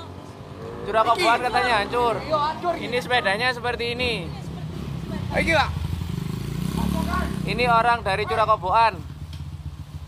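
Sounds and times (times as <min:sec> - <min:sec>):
motorcycle engine rumbling: 0:00.0 - 0:10.0.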